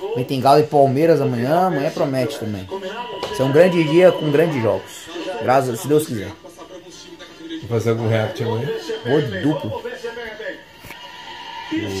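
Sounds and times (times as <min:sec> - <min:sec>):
man's voice: 0:00.0 - 0:10.8, 0:11.7 - 0:12.0.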